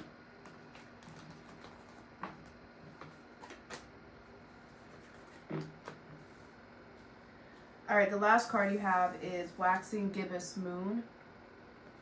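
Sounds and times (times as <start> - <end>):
cards being shuffled: 0.4 - 4.0, 4.6 - 6.1.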